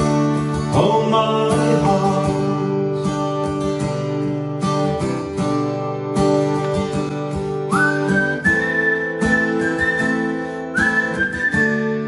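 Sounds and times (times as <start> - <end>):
acoustic guitar strumming: 0.0 - 12.0
person whistling melody: 7.7 - 12.0.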